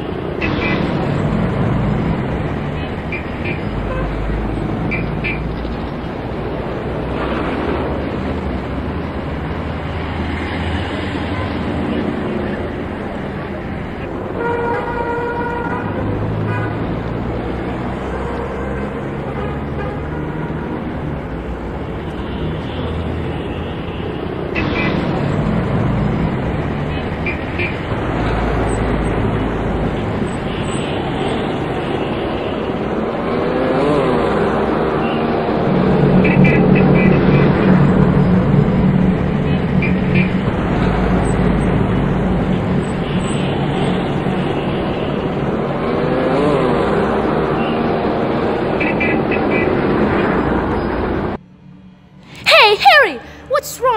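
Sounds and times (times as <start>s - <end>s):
cars and motorbikes passing: 0.0s - 53.9s
car horns tooting: 14.4s - 16.8s.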